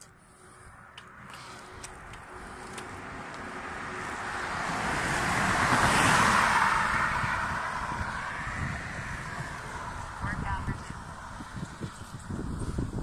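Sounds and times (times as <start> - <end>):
car driving past: 1.1 - 12.6
wind buffeting microphone: 1.8 - 13.0.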